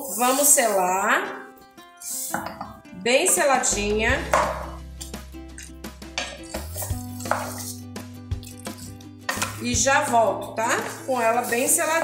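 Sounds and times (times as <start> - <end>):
background music: 0.0 - 12.0
spatula scraping a metal pot: 2.0 - 2.8, 6.2 - 7.9.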